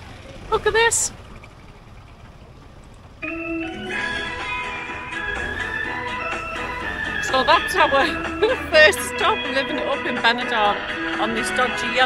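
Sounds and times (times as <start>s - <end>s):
street traffic rumble: 0.0s - 12.0s.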